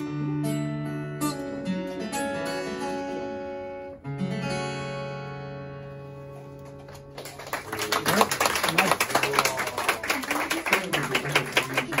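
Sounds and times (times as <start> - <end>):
small audience clapping: 6.6 - 12.0.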